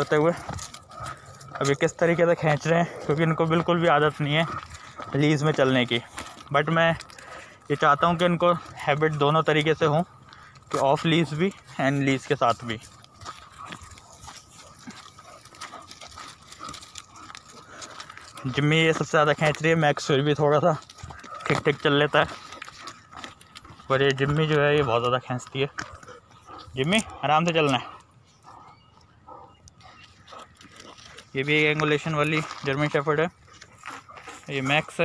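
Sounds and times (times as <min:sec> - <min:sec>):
faint dog sounds: 0:00.0 - 0:35.0
paw and footstep scuffs on dirt: 0:00.0 - 0:35.0.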